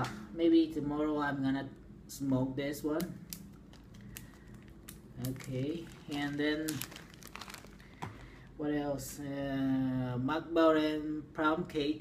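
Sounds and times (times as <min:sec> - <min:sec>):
steady low hum: 0:00.0 - 0:12.0
tobacco packet crinkling: 0:03.2 - 0:08.5.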